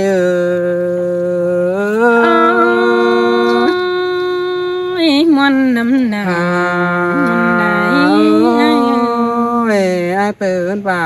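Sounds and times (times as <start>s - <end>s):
person singing held notes: 6.7s - 9.3s.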